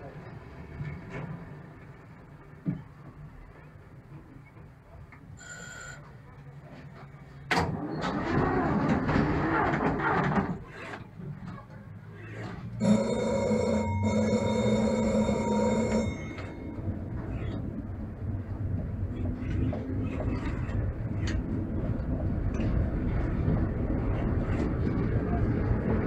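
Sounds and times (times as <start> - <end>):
tram electric bell ringing: 5.4 - 6.2, 12.8 - 17.9.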